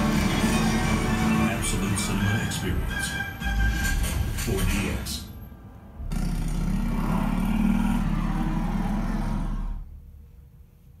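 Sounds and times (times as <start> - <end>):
loud low soundtrack rumble: 3.5 - 11.0.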